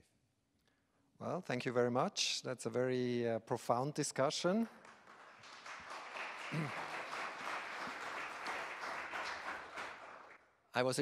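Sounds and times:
audience applause: 0:04.8 - 0:10.4.

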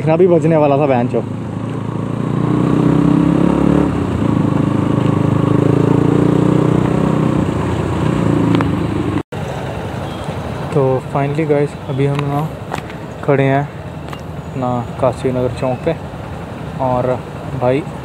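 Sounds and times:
wind and road noise: 0:00.0 - 0:18.0
motorcycle engine running: 0:00.1 - 0:09.2.

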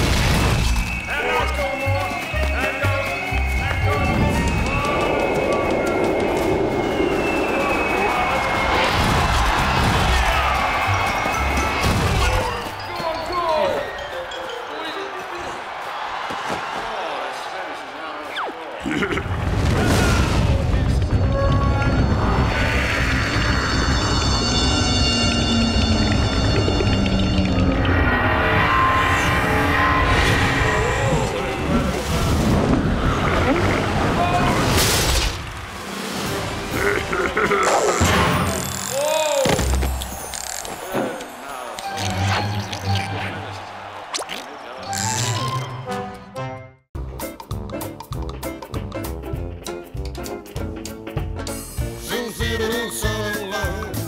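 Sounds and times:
cartoon background music: 0:36.6 - 0:43.6, 0:44.3 - 0:54.0.

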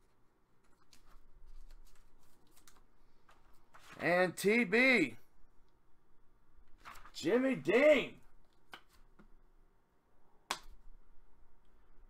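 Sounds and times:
cards rustling: 0:00.6 - 0:04.0, 0:06.7 - 0:07.4.

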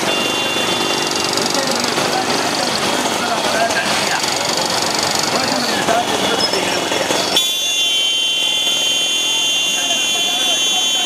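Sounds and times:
motorcycle engines running: 0:00.0 - 0:11.0.

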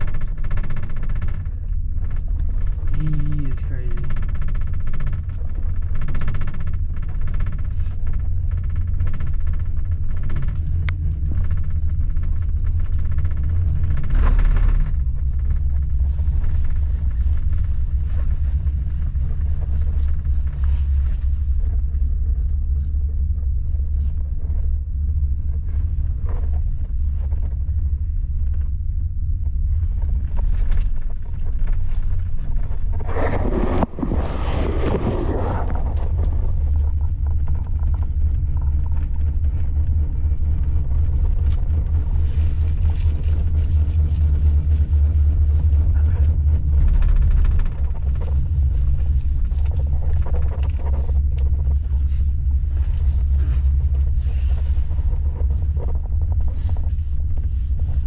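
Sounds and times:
gondola cabin rumble: 0:00.0 - 0:58.0.

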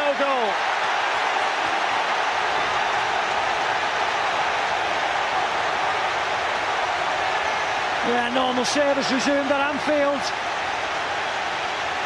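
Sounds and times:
stadium crowd cheering: 0:00.0 - 0:12.0.

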